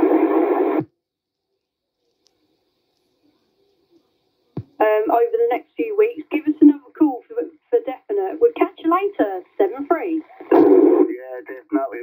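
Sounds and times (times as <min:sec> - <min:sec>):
radio hiss burst: 0:00.0 - 0:00.9, 0:09.6 - 0:12.0
speech over cb radio: 0:04.6 - 0:12.0.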